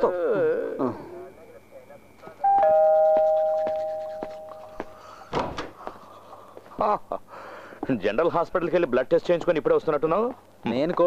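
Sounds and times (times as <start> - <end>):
two-note doorbell chime: 2.4 - 4.8.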